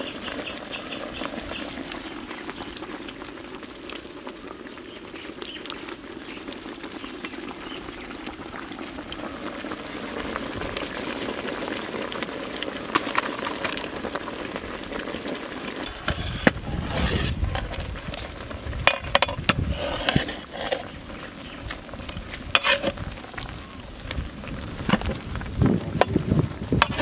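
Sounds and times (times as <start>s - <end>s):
pot of noodles boiling: 0.0s - 27.0s.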